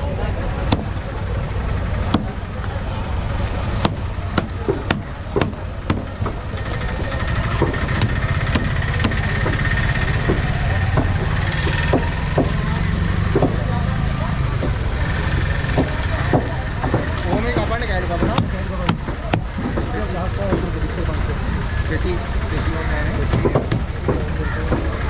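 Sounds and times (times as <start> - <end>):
small engine idling: 0.0 - 25.0
knife chopping on wooden block: 7.5 - 12.7, 13.3 - 13.6.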